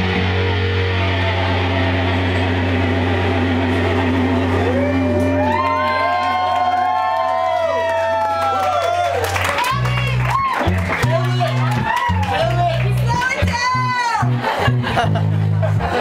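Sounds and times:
electric guitar pitch swoops: 0.0s - 6.4s
electric bass low note: 0.0s - 7.1s, 9.6s - 16.0s
live rock band: 0.0s - 16.0s.

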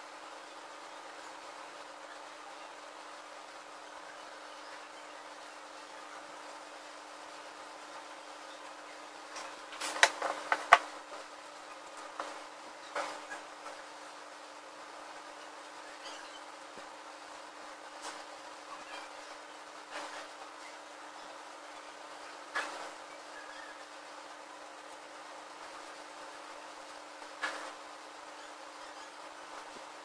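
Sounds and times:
faint steady hiss: 0.0s - 30.0s
plastic film crinkling: 9.4s - 10.9s.

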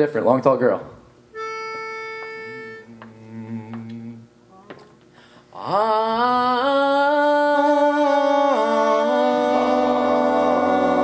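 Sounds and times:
male voices singing harmony: 2.9s - 4.3s, 5.5s - 11.0s
man singing a cappella: 2.9s - 4.3s, 5.5s - 11.0s.

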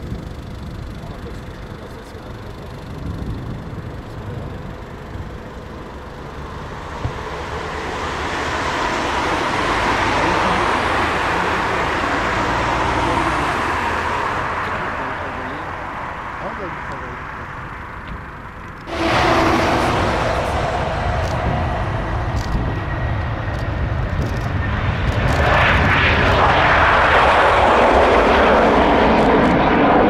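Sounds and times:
jet engines at taxi power: 0.0s - 30.0s.

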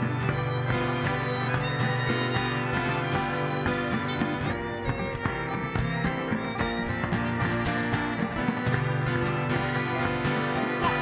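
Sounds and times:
fiddle: 0.0s - 11.0s
strummed acoustic guitar: 0.0s - 11.0s.

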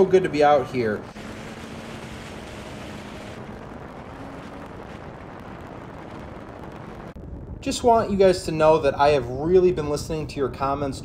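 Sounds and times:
faint snowmobile engine: 0.0s - 9.4s
wind rushing over microphone: 0.0s - 11.0s.

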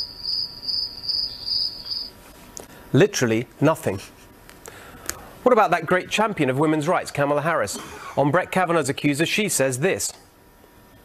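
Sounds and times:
crickets chirping: 0.0s - 2.2s.

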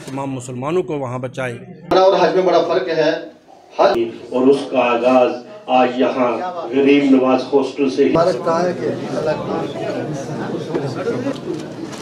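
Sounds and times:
men talking: 0.0s - 11.5s.

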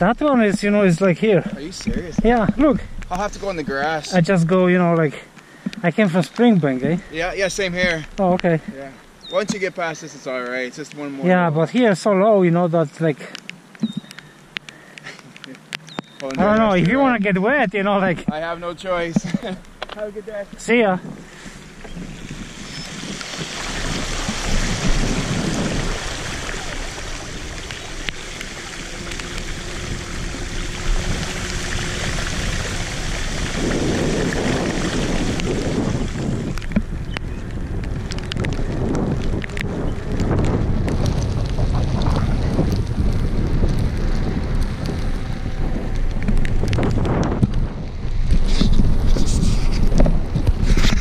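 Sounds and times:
wind buffeting microphone: 0.0s - 9.9s, 15.9s - 51.0s
scattered clicks: 13.2s - 17.4s
bike tyres splashing through water: 15.9s - 51.0s
tyre rumble on wet asphalt: 16.2s - 51.0s.

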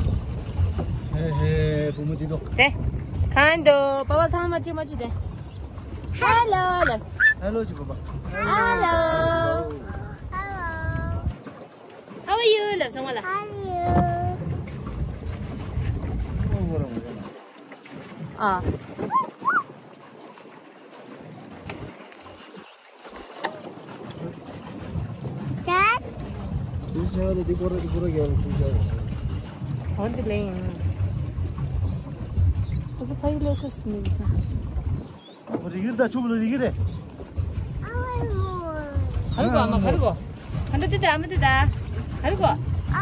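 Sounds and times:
wind rumble on microphone: 0.0s - 11.6s, 13.5s - 17.3s, 17.9s - 19.8s, 23.2s - 43.0s
small child squealing: 19.1s - 19.7s.

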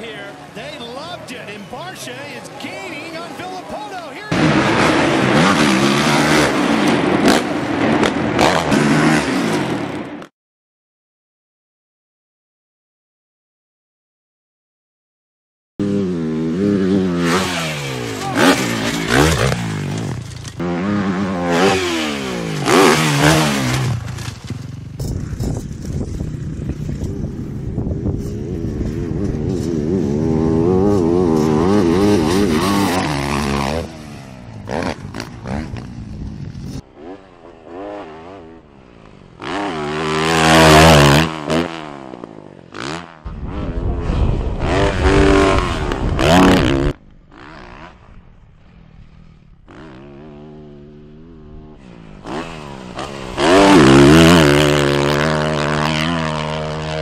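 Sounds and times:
dirt bike engines revving: 0.0s - 10.2s, 15.8s - 57.0s.

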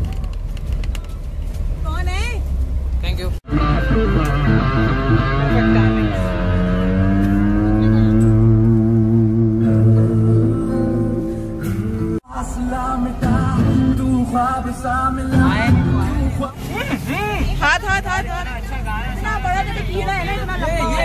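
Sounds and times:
bus engine rumbling: 0.0s - 21.0s
voices calling out: 3.5s - 8.6s, 15.2s - 21.0s
song with heavy bass: 3.5s - 16.5s.

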